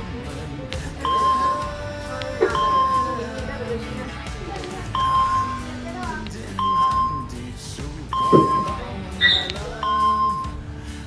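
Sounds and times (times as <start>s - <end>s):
background music: 0.0s - 11.0s
short steady beep: 1.0s - 1.7s, 2.5s - 3.3s, 4.9s - 5.8s, 6.5s - 7.4s, 8.1s - 10.6s.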